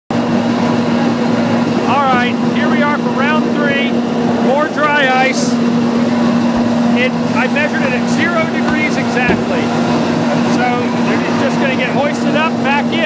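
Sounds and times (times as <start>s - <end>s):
machinery humming loudly: 0.2s - 12.9s
voices: 0.8s - 13.0s.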